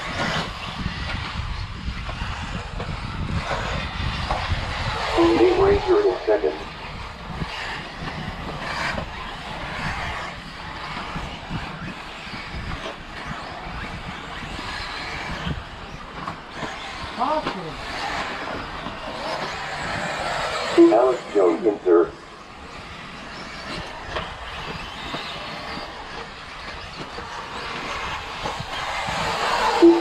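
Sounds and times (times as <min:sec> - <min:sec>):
buggy accelerating whine: 0:00.0 - 0:30.0
electric motor whine: 0:00.0 - 0:30.0.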